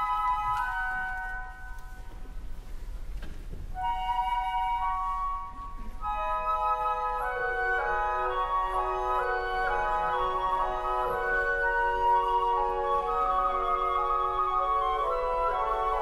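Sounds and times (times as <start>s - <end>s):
flutes playing held notes: 3.8s - 16.0s
woodwinds playing chords: 3.8s - 16.0s.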